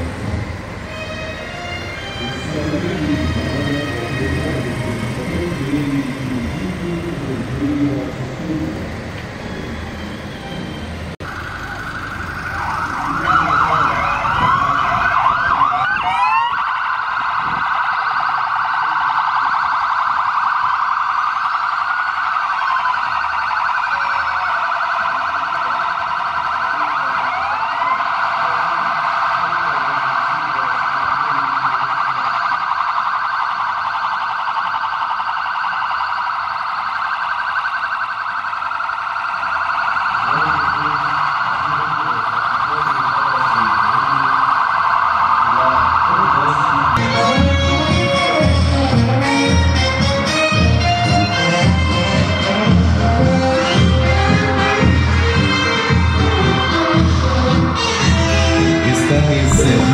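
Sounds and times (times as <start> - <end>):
police sirens wailing: 0.0 - 59.9.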